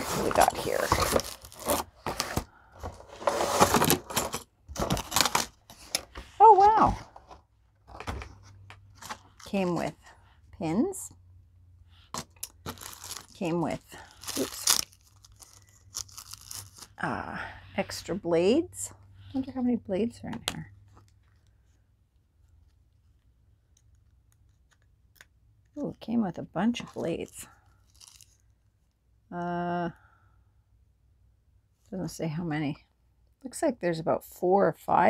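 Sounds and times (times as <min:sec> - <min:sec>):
plastic crackle: 0:00.0 - 0:02.5, 0:12.2 - 0:17.0, 0:27.8 - 0:28.4
cardboard box rustling: 0:00.0 - 0:08.4, 0:12.2 - 0:16.9.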